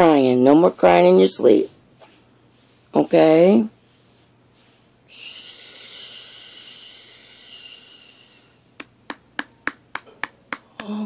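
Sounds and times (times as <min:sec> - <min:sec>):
soft hushing hiss: 0:00.0 - 0:09.4.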